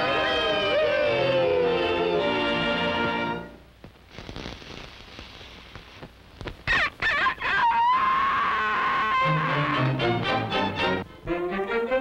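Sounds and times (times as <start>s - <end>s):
cartoon chick crowing: 6.7s - 9.9s.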